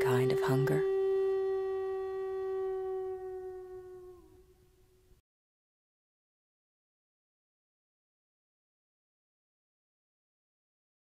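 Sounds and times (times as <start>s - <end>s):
flute long note: 0.0s - 4.6s.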